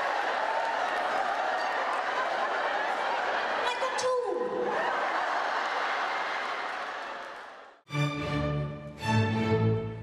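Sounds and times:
audience applauding: 0.0s - 3.9s, 4.7s - 7.8s.

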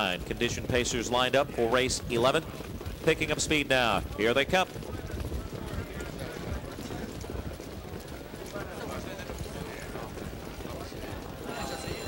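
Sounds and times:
clatter of many hooves: 0.0s - 12.0s
faint voices: 0.0s - 12.0s.

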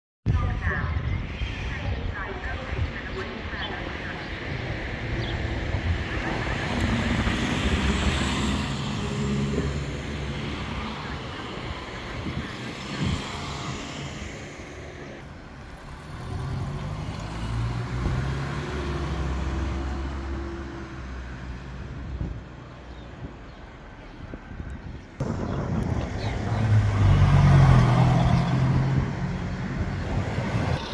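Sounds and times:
cars passing: 2.2s - 30.9s.

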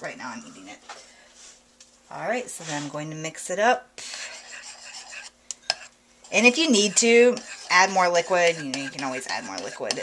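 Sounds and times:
metal spoon scraping a bowl: 4.2s - 10.0s.

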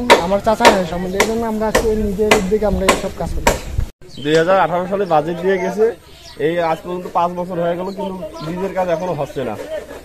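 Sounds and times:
man talking into microphone: 0.0s - 10.0s.

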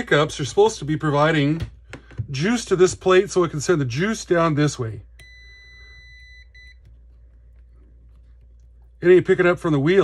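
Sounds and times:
multimeter continuity beep: 5.2s - 6.9s.

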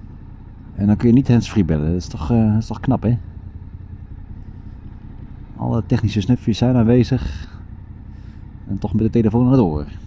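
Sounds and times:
motorcycle engine low rumble: 0.0s - 10.0s
man speaking: 0.8s - 3.3s, 5.6s - 7.6s, 8.7s - 10.0s.

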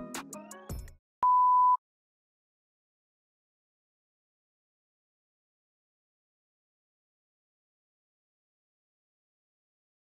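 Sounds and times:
background music with a beat: 0.0s - 1.0s
steady high beep: 1.2s - 1.8s.

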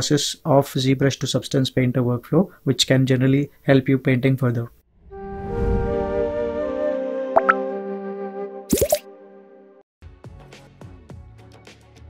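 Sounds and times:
upward-gliding sound effects: 7.4s - 7.6s.

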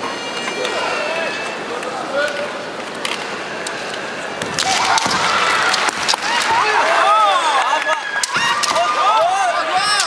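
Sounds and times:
bamboo swords clacking: 3.0s - 6.8s, 8.1s - 9.2s.

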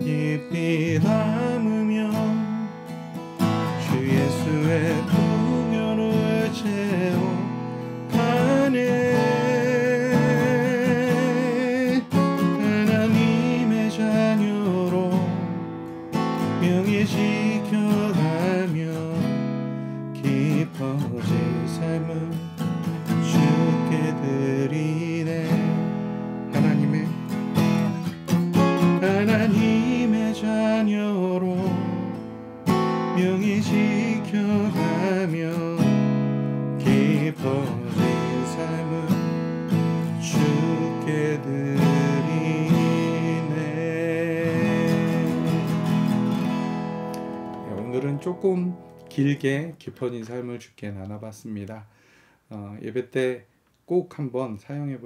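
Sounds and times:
man singing: 0.0s - 15.6s, 16.4s - 28.0s, 28.6s - 32.1s, 32.9s - 46.2s, 47.6s - 51.8s
acoustic guitar strummed: 0.0s - 49.8s.

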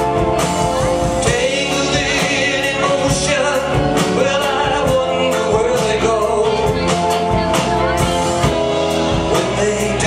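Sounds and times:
pop-rock band playing: 0.0s - 10.0s
man singing: 0.9s - 10.0s.

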